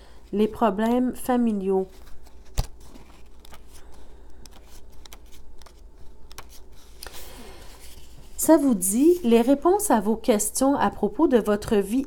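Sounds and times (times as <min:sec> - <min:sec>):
paper pages rustling: 0:01.8 - 0:09.6.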